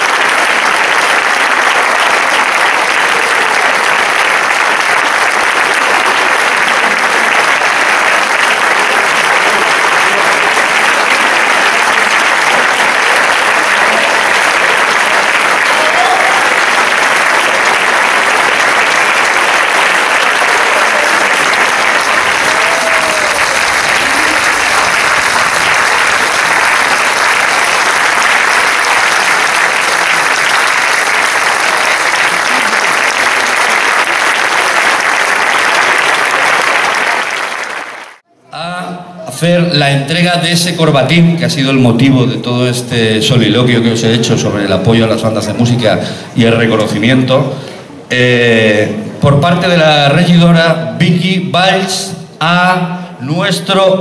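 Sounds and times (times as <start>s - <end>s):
audience applauding: 0.0s - 38.3s.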